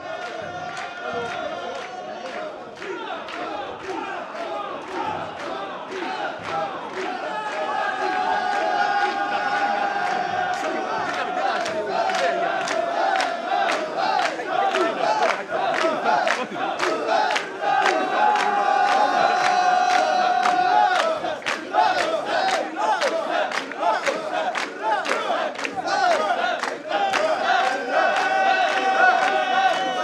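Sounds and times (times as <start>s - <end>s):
crowd shouting rhythmic chant: 0.0s - 30.0s.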